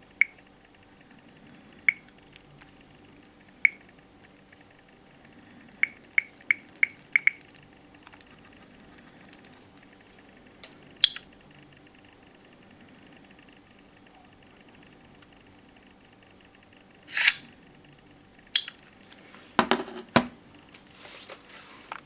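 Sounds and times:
faint steady hum: 0.0s - 22.0s
touchscreen clicks: 0.2s - 0.4s, 1.9s - 2.4s, 3.6s - 4.4s, 5.7s - 9.5s, 11.0s - 11.4s, 18.6s - 18.8s.

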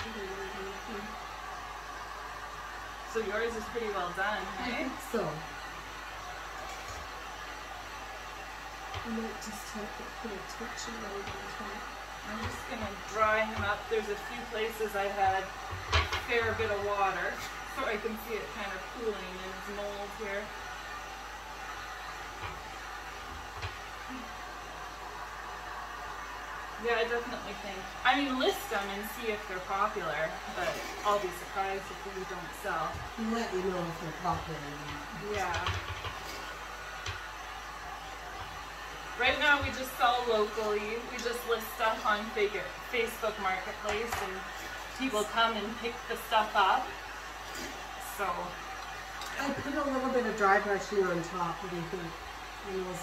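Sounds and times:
woman speaking: 0.0s - 1.2s, 3.1s - 5.5s, 9.0s - 15.5s, 16.1s - 20.5s, 26.8s - 35.8s, 39.2s - 47.0s, 48.0s - 48.6s, 49.4s - 53.0s.

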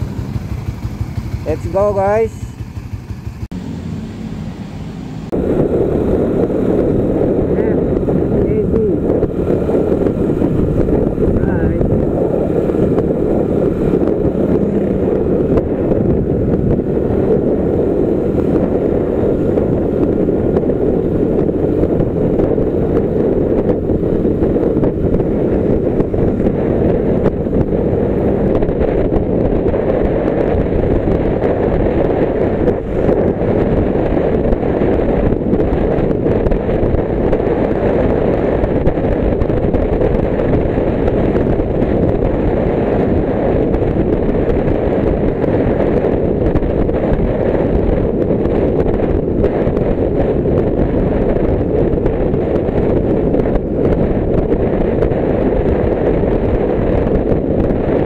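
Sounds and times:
motorcycle engine and tyre noise: 0.0s - 58.0s
wind buffeting microphone: 0.0s - 58.0s.

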